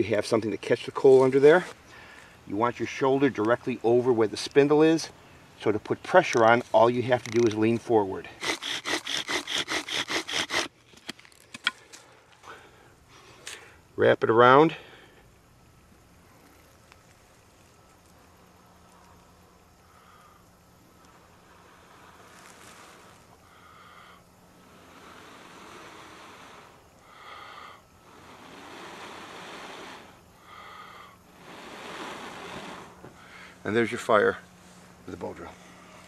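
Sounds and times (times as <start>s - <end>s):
short sharp breaths: 1.8s - 2.5s, 11.7s - 13.9s, 14.7s - 15.3s, 21.1s - 33.6s
person blowing breathily: 21.5s - 33.6s.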